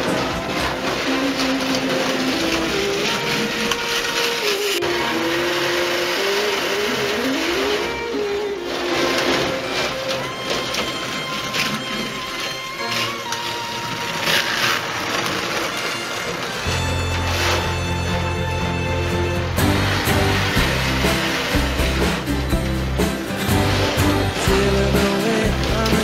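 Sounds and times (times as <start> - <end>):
slot car motors whining: 0.0 - 26.0.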